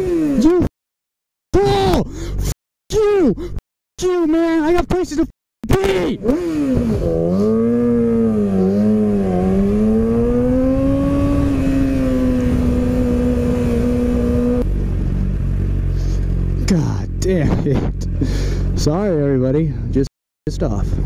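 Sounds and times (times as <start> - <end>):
motorcycle engine revving: 0.0 - 0.7, 5.8 - 19.4.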